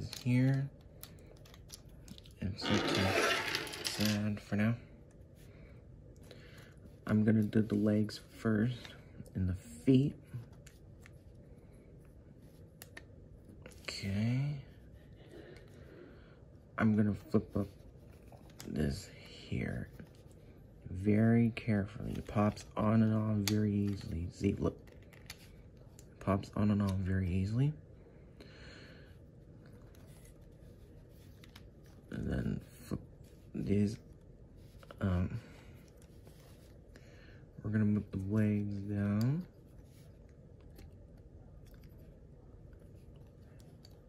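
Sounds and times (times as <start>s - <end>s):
light handling noises: 17.0s - 20.6s
soft rustle: 29.4s - 44.0s.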